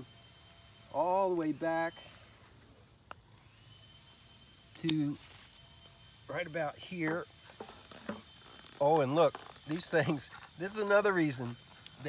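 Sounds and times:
crickets singing: 0:00.0 - 0:12.0
pruning shears click: 0:04.8 - 0:05.2.

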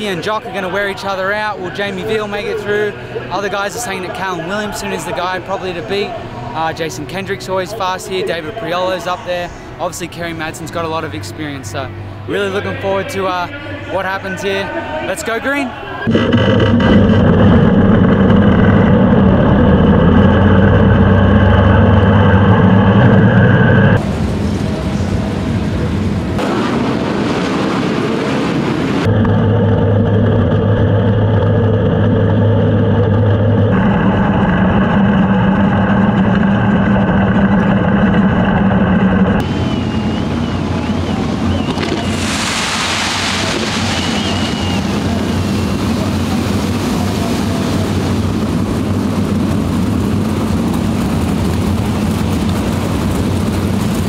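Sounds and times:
rough noisy engine: 0:00.0 - 0:54.0
race car engines running: 0:16.0 - 0:42.4, 0:43.3 - 0:54.0.

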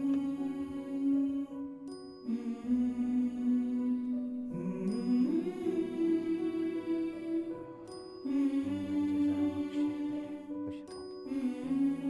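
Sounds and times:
wordless hummed vocal melody: 0:00.0 - 0:12.0.

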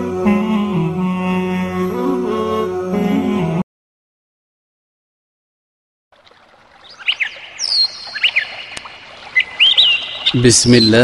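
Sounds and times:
birds chirping: 0:06.2 - 0:11.0.

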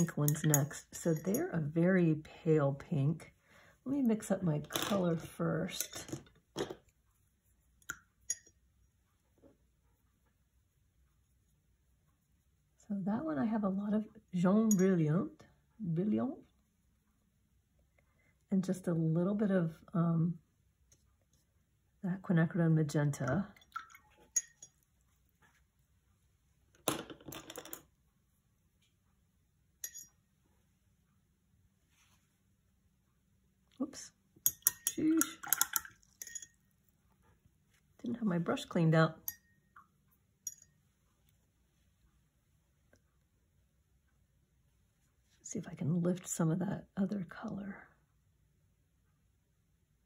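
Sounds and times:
paintbrush clinking: 0:00.0 - 0:01.8, 0:06.8 - 0:08.9, 0:14.6 - 0:15.2, 0:23.3 - 0:25.6, 0:29.8 - 0:30.4, 0:34.4 - 0:36.9, 0:39.2 - 0:41.0.

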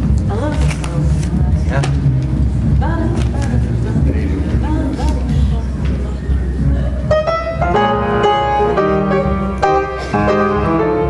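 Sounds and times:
upright piano jazz: 0:07.0 - 0:11.0.

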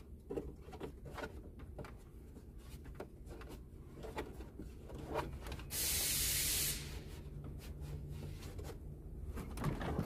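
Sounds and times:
sharp hiss: 0:05.7 - 0:07.1.

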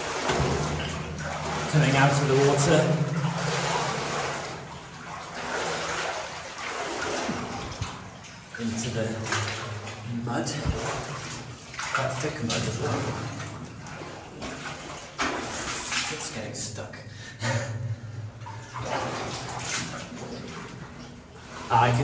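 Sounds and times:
footsteps splashing through water: 0:00.0 - 0:16.4, 0:18.4 - 0:21.7.

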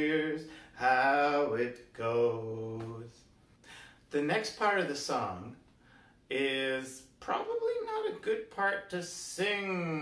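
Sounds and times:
man singing: 0:00.0 - 0:03.3, 0:06.3 - 0:10.0.

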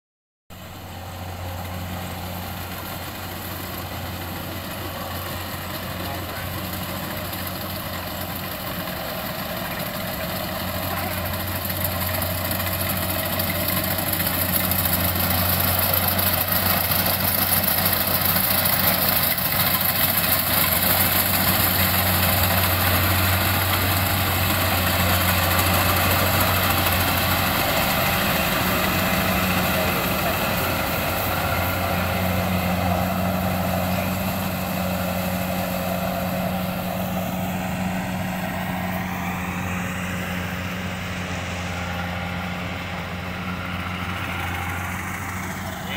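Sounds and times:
combine harvester engine running: 0:00.5 - 0:45.9.

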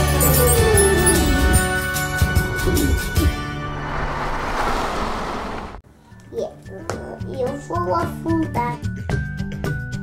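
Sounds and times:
rushing whoosh: 0:02.7 - 0:05.8.

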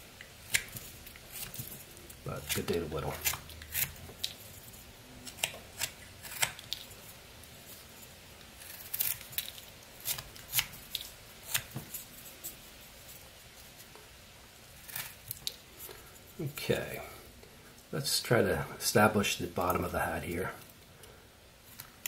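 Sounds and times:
knife cutting wood shavings: 0:00.4 - 0:04.3.

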